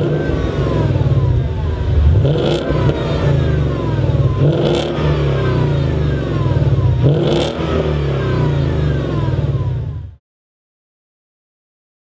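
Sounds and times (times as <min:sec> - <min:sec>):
loud car engine revving: 0:00.0 - 0:10.2.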